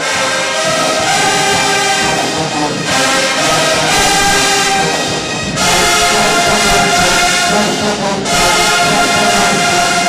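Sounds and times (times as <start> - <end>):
marching band playing chords: 0.0 - 10.0.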